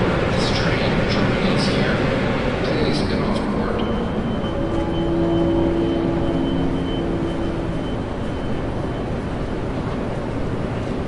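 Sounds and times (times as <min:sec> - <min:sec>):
thin high whine: 0:00.0 - 0:10.3
rumble of trains: 0:00.0 - 0:11.0
low pitched tone: 0:03.6 - 0:09.5.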